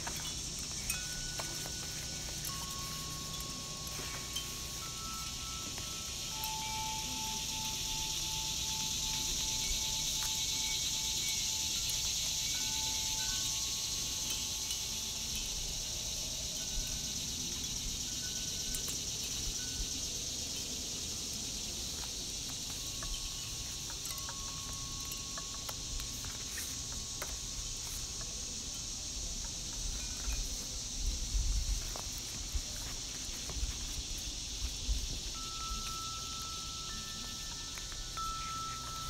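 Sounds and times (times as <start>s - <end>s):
steady high hiss: 0.0s - 39.0s
ambient chime-like music: 0.1s - 19.1s, 35.3s - 39.0s.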